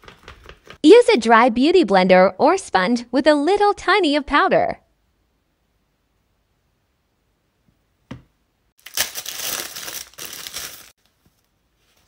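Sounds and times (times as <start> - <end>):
face mask crinkling: 8.8 - 12.0.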